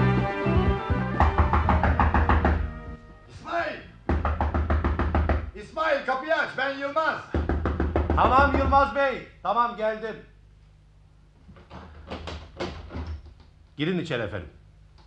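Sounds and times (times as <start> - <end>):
scene-change music: 0.0 - 3.5
knocking on a door: 1.2 - 2.7, 4.1 - 5.5, 7.3 - 9.0, 11.6 - 13.2.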